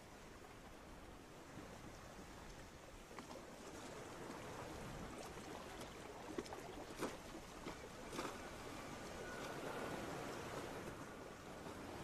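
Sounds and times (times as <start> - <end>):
water lapping gently: 0.0 - 12.0.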